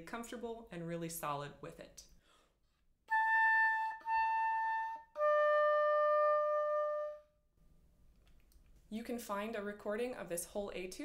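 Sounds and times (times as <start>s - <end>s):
oboe playing: 3.1s - 7.4s.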